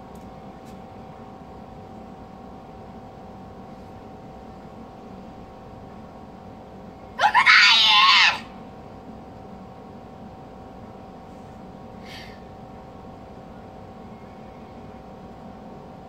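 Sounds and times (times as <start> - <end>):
girl shouting: 7.2 - 8.5.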